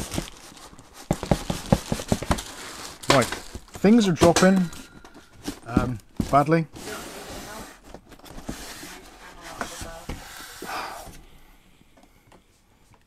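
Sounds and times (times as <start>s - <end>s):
cardboard box scraping and rustling: 5.4s - 10.2s.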